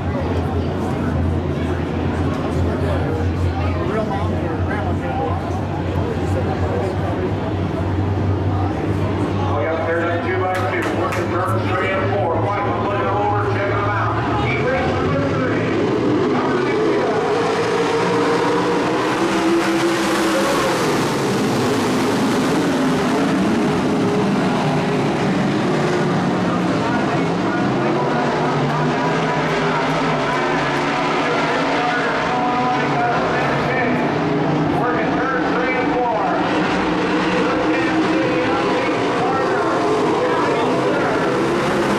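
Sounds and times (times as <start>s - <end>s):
race car engines: 0.0s - 41.9s.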